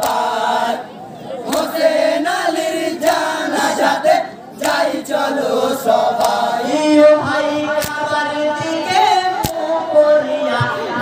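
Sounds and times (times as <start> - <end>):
male chorus singing: 0.0 - 11.0.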